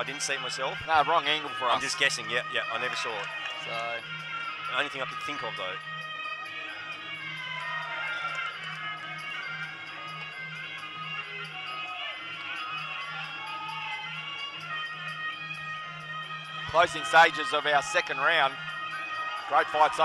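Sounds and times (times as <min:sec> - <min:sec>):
percussion beat: 0:00.0 - 0:20.0.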